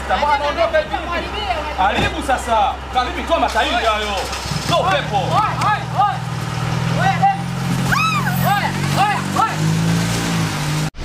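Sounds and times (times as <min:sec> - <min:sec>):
car engine running: 0:00.0 - 0:11.0
high-pitched rising and falling calls: 0:07.8 - 0:08.8.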